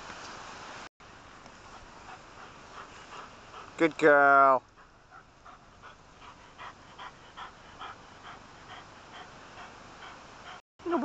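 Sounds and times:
dog panting: 1.6s - 10.6s.

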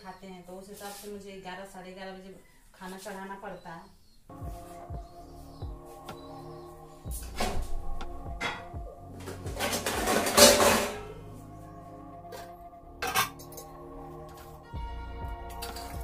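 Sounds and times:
background music: 4.2s - 16.0s
pots and lids clanking: 8.4s - 11.2s, 12.3s - 13.8s.

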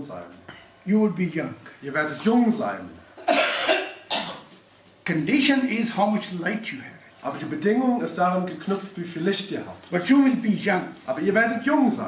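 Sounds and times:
person coughing: 3.2s - 4.5s.

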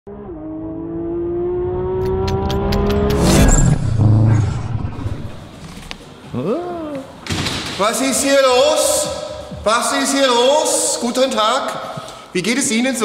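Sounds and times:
car engine accelerating: 0.1s - 5.5s.

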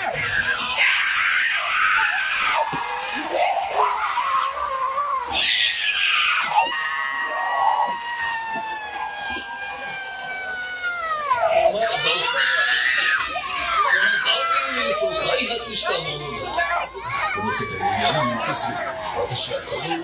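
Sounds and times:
long high-pitched scream: 0.0s - 14.9s
people screaming in fright: 0.0s - 20.0s.

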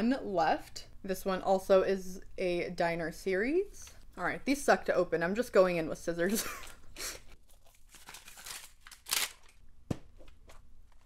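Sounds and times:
wrapping crinkling and tearing: 7.4s - 9.6s.

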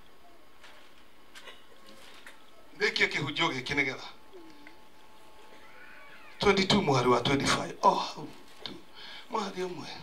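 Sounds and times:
faint steady hum: 0.0s - 10.0s
man speaking: 2.8s - 4.2s, 6.2s - 8.4s, 9.3s - 10.0s.

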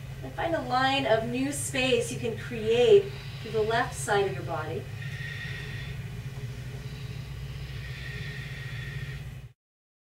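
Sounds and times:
faint high hum: 0.0s - 9.6s
low background rumble: 0.0s - 9.6s.

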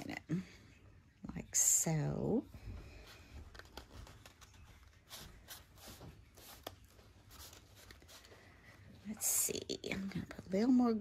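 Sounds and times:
cardstock paper rustling: 2.9s - 9.0s.

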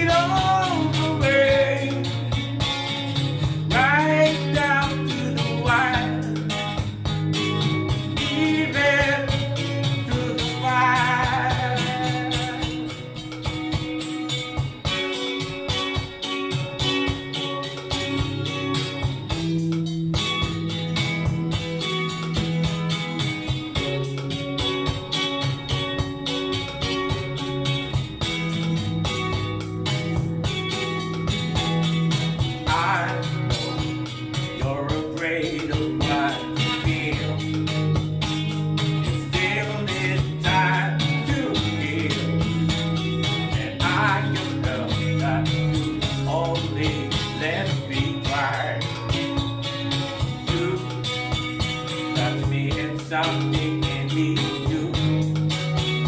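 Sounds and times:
backing music with bass line: 0.0s - 56.0s
electric guitar: 0.0s - 56.0s.

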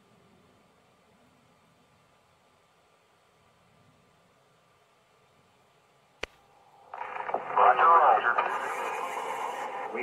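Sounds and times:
thin radio-like voice: 7.0s - 10.0s.

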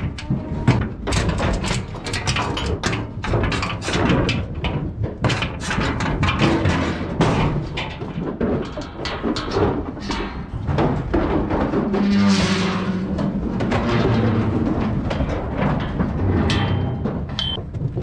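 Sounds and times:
metallic knocks and clangs: 0.0s - 18.0s.

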